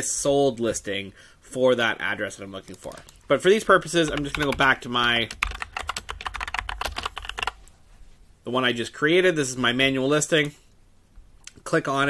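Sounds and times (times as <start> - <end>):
typing on keyboard: 2.7 - 3.2, 3.8 - 7.6.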